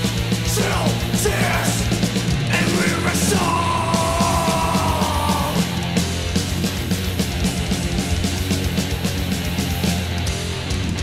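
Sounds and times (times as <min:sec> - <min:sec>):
thrash metal band playing: 0:00.0 - 0:11.0.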